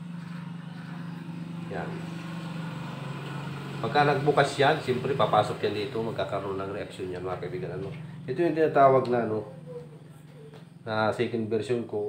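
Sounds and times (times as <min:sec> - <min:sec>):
low engine drone: 0:00.0 - 0:11.2.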